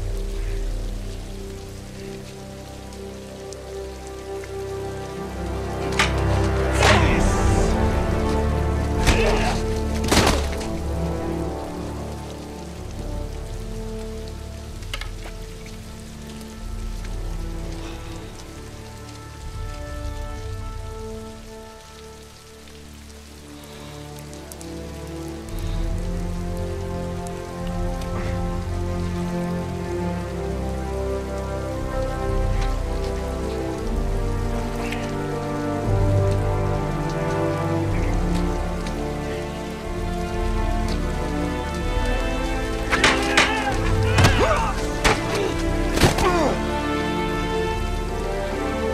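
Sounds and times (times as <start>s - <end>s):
heavy rain falling: 0.0s - 48.9s
slow music with low held notes: 0.0s - 48.9s.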